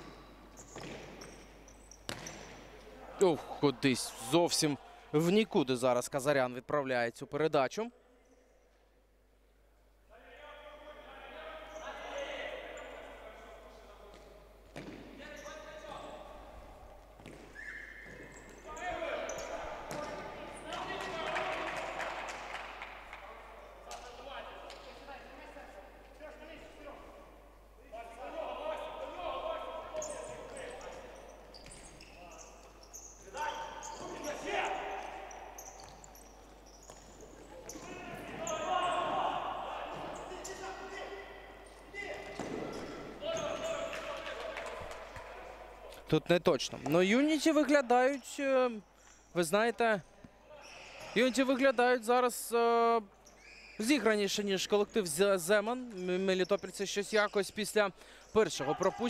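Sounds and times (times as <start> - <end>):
ball bouncing on wooden floor: 0.0 - 1.4, 2.0 - 2.6, 42.1 - 43.6
players calling out: 28.0 - 46.0.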